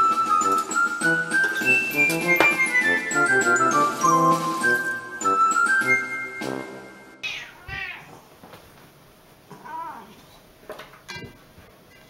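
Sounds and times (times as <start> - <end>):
jingly background music: 0.0 - 7.2
cat meowing: 7.2 - 8.3, 9.5 - 10.4.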